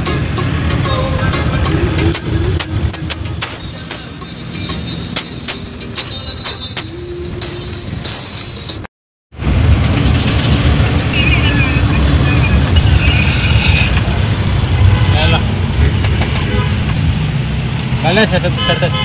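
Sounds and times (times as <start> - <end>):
music: 0.0 - 8.9
minibus engine and road rumble: 0.0 - 19.0.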